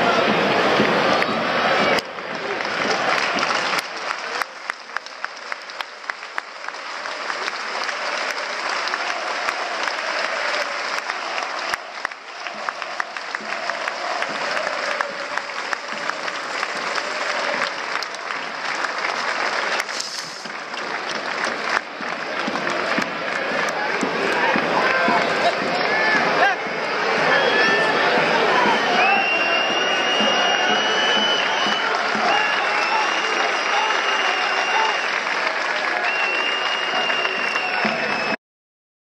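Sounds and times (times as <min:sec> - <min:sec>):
stadium crowd applauding: 0:00.0 - 0:38.4
voices in crowd: 0:00.0 - 0:38.4
sharp claps close by: 0:01.9 - 0:26.3.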